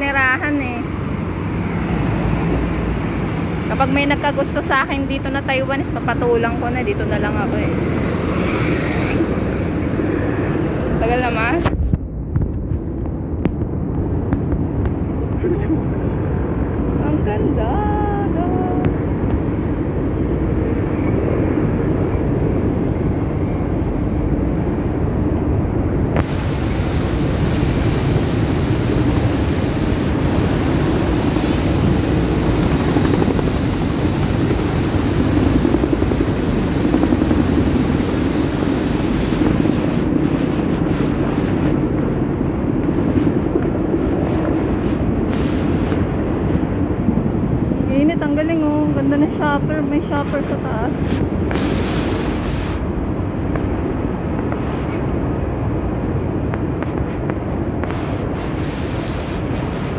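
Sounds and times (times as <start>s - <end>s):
street traffic rumble: 0.0s - 59.9s.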